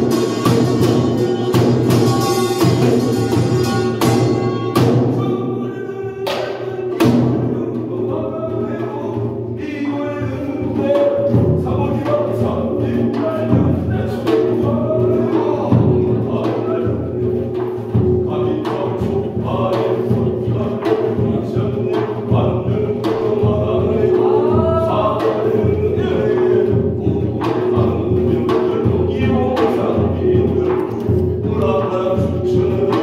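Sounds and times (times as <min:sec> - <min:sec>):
sharp drum strike: 0:00.0 - 0:07.9
barrel drum beats: 0:00.0 - 0:33.0.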